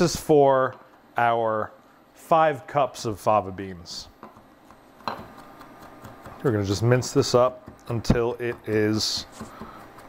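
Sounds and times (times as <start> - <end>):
knife tapping on wooden board: 4.2 - 6.5, 7.3 - 10.0.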